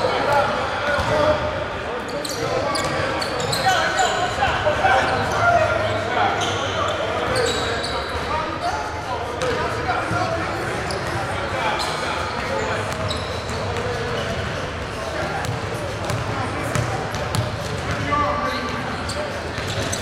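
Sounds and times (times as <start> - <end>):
murmur of many voices: 0.0 - 20.0.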